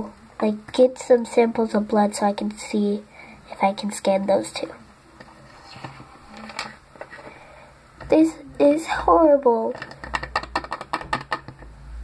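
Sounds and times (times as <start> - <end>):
toy figures clicking: 9.7 - 11.6.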